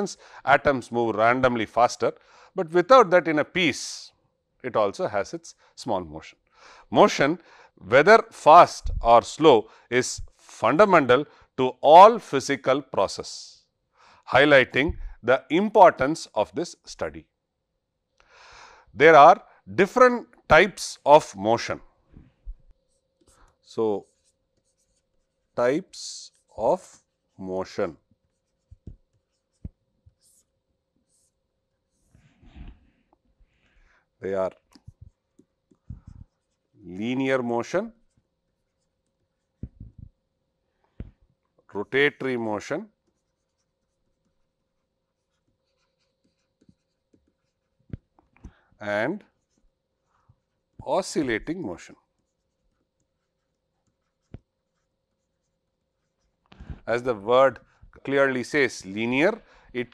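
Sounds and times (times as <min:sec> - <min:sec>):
stylus tapping and scratching: 0:22.2 - 0:25.6, 0:28.0 - 0:33.4, 0:34.5 - 0:36.7, 0:38.0 - 0:40.2, 0:42.9 - 0:56.9.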